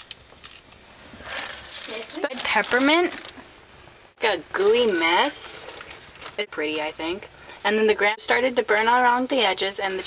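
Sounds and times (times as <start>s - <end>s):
fire crackling in fireplace: 0.0s - 10.0s
person speaking: 1.8s - 3.4s, 4.2s - 5.7s.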